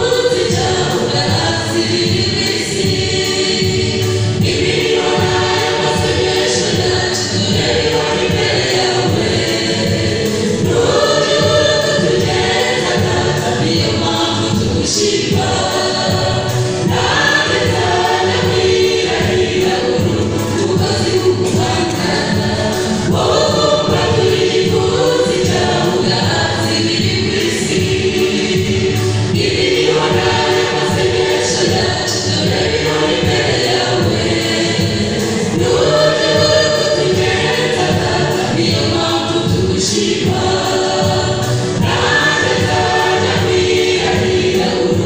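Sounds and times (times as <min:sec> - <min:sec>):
choir singing gospel song: 0:00.0 - 0:45.0.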